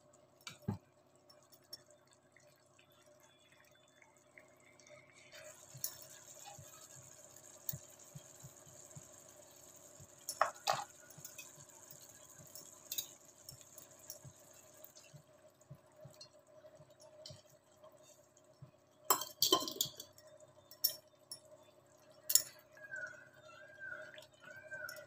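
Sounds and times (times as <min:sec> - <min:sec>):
gravy bubbling and popping: 0:00.0 - 0:25.0.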